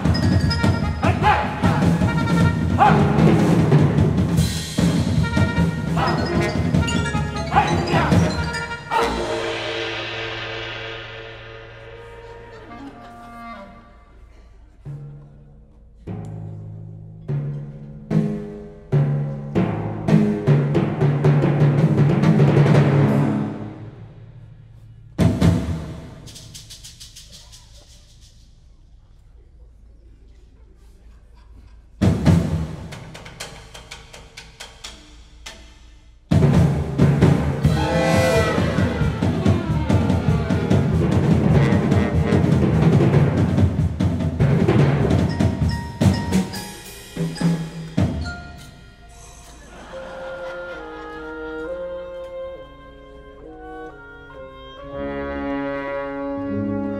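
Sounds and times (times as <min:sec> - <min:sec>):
heavy drum strikes: 0:00.0 - 0:12.1, 0:25.1 - 0:26.3, 0:36.3 - 0:48.3
orchestra playing: 0:00.0 - 0:14.3, 0:36.4 - 0:56.9.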